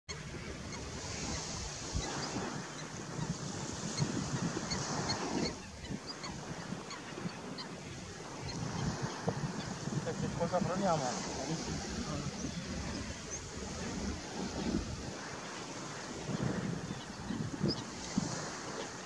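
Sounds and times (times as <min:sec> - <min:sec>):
wind noise on microphone: 0:00.1 - 0:19.0.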